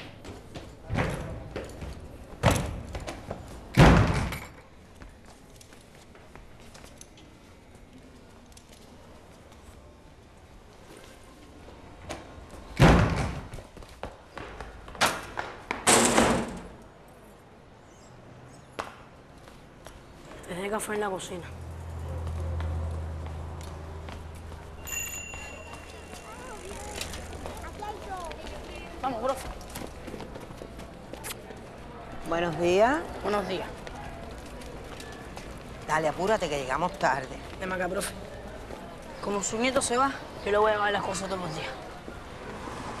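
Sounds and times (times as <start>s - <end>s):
doors banging shut: 3.7s - 4.6s, 12.8s - 13.5s, 15.8s - 16.8s.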